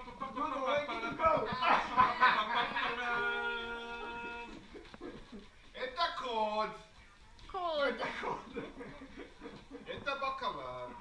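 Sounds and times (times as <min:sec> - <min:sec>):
people laughing: 0:00.0 - 0:05.7, 0:07.6 - 0:11.0.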